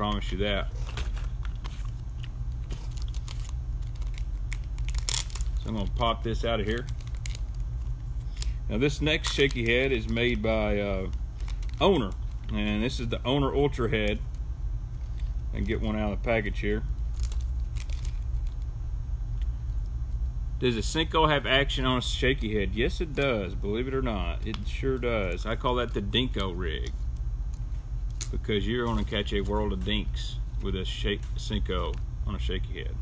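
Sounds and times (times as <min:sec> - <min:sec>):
steady low hum: 0:00.0 - 0:33.0
plastic packaging crinkling: 0:00.2 - 0:13.1, 0:17.0 - 0:18.7.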